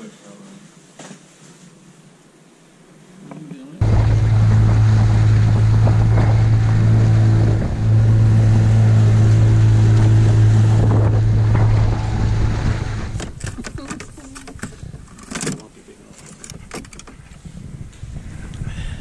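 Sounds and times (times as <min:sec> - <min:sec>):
wind and water noise: 0:00.0 - 0:19.0
outboard motor running: 0:03.8 - 0:15.0.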